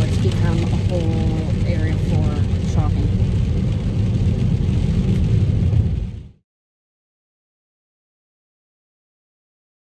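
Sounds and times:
car road and engine noise: 0.0s - 6.4s.

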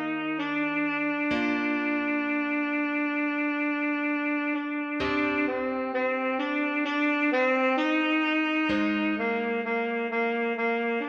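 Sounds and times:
alto saxophone slow melody: 0.0s - 11.0s.

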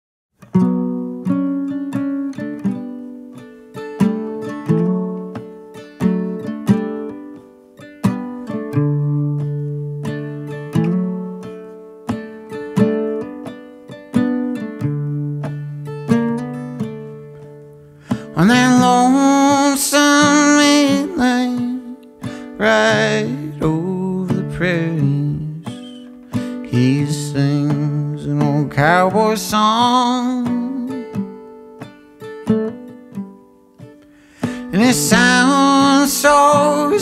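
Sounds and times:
acoustic guitar plucked notes: 0.4s - 37.0s.

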